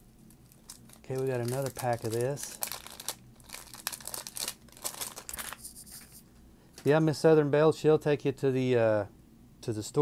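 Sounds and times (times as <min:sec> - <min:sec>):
plastic wrapper crinkling and tearing: 0:00.2 - 0:05.7
cards rustling: 0:00.7 - 0:06.2.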